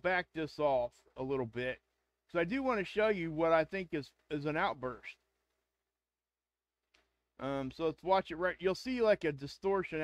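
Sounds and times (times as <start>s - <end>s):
person speaking: 0.0s - 5.3s.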